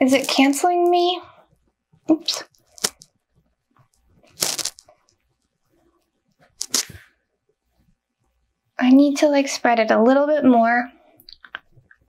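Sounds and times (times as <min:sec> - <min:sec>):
makeup sponge scuffing on face: 0:04.2 - 0:04.9, 0:06.4 - 0:07.1.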